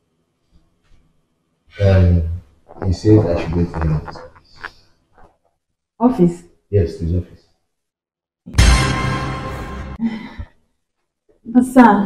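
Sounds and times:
faint small sounds: 0.0 - 7.9
man speaking: 1.8 - 4.7, 6.7 - 7.4.

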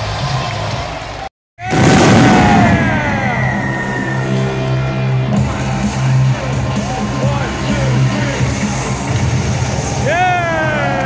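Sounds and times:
pyrotechnics bursting and whistling: 1.7 - 4.5
arena music over loudspeakers: 2.4 - 11.0.

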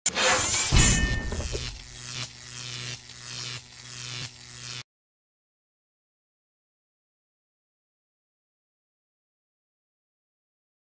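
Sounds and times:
crash sound effect: 0.1 - 1.8.

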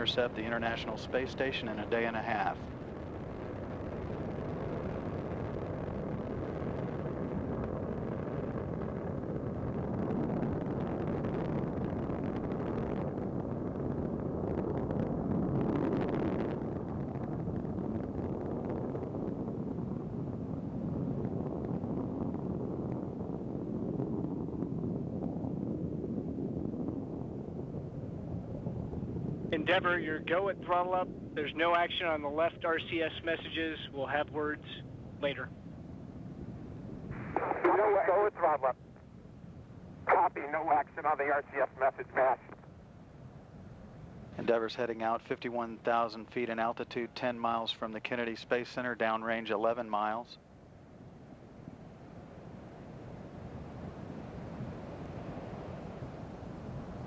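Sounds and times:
low rocket engine roar: 0.0 - 57.0.

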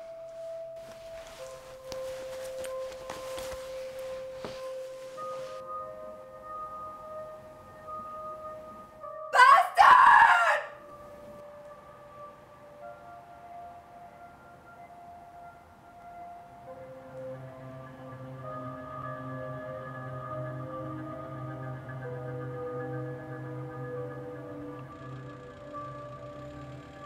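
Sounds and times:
film score long held notes: 0.0 - 27.0
high-pitched human scream: 9.3 - 10.8.

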